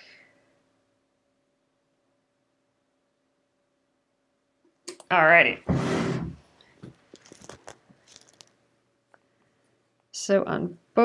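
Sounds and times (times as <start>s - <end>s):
small clicks of fabric pieces: 7.0s - 9.3s.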